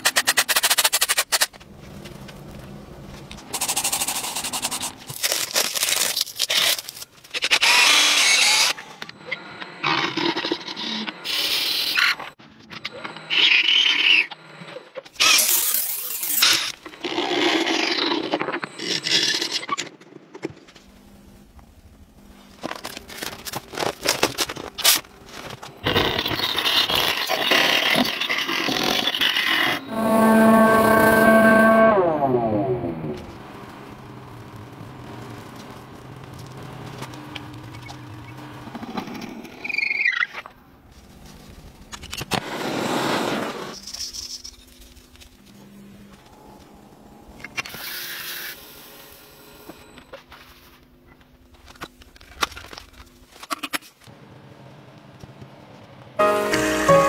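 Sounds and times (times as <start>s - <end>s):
lathe spinning whine: 29.4s - 38.8s
scraping and rubbing sounds: 29.7s - 33.3s.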